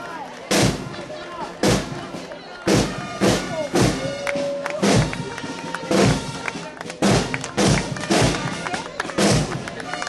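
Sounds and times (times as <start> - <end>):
marching band drums: 0.4 - 10.0
heavy drum strikes: 0.5 - 1.0, 1.6 - 6.4, 7.0 - 8.6, 9.2 - 9.7.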